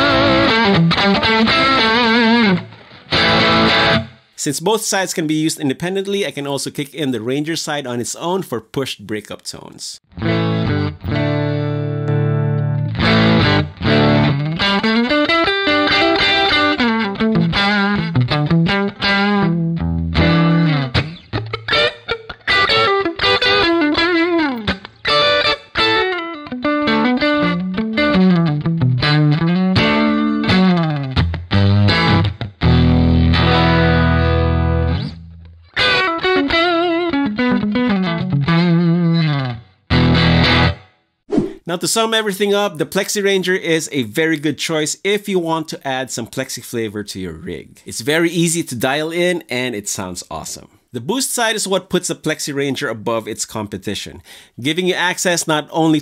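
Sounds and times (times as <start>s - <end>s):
overdriven electric guitar: 0.0s - 4.3s, 10.1s - 41.0s.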